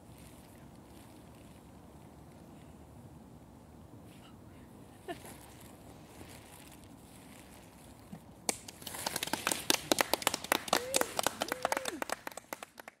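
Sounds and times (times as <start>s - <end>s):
people clapping: 8.5s - 13.0s.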